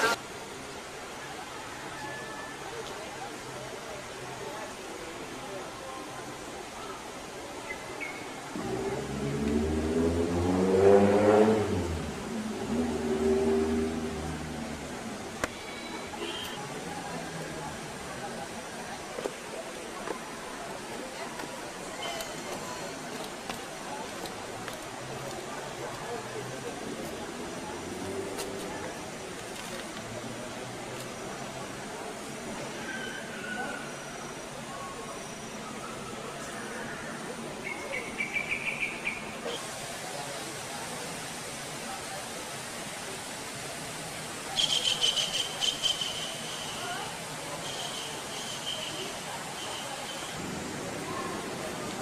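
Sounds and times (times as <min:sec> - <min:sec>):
outdoor hiss: 0:00.0 - 0:01.8, 0:02.4 - 0:52.0
faint distant voices: 0:00.0 - 0:52.0.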